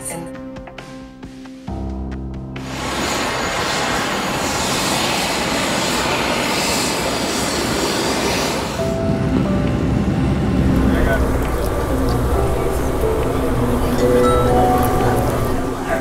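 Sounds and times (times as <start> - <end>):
loud rushing noise: 2.6 - 16.0
subway train rumbling: 2.6 - 16.0
steady tones: 8.8 - 16.0.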